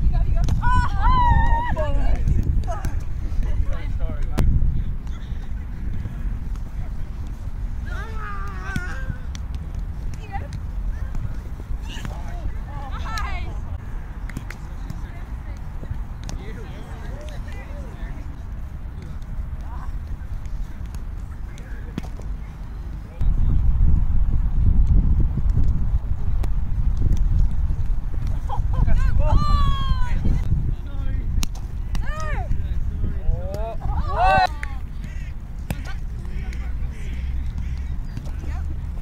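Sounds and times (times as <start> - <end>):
wind buffeting microphone: 0.0 - 17.0, 23.2 - 39.0.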